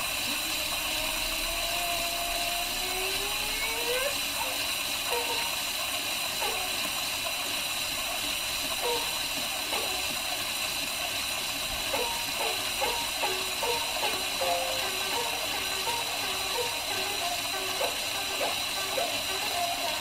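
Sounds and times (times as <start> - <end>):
shamisen notes plucked: 11.9 - 20.0.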